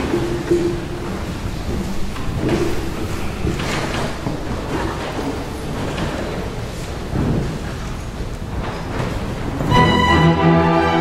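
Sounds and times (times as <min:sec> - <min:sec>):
chamber orchestra playing: 0:09.7 - 0:11.0.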